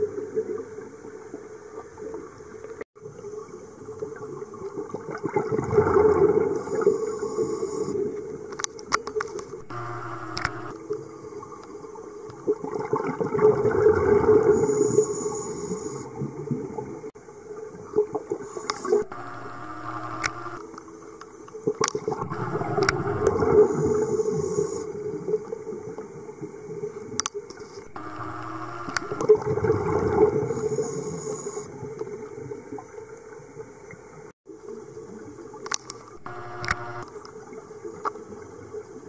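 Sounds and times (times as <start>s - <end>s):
gurgling exhaled bubbles: 4.8s - 6.9s, 12.6s - 14.6s
scuba regulator inhale hiss: 6.6s - 8.0s, 14.5s - 16.1s, 23.5s - 25.0s, 30.5s - 31.7s
sharp clicks: 8.6s - 10.8s, 18.6s - 20.6s, 21.8s - 23.4s, 27.9s - 29.3s, 35.7s - 37.1s.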